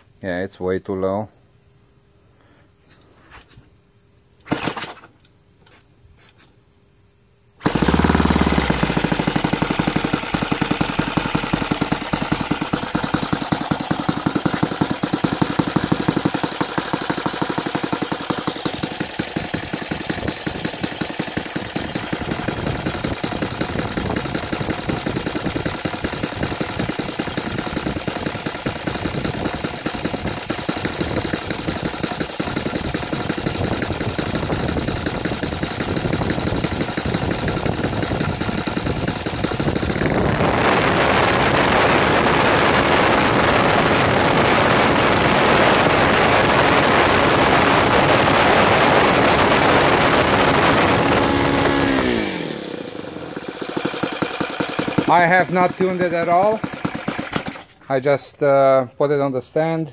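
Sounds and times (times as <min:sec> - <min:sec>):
model aircraft engine idling: 0:07.6 - 0:57.7.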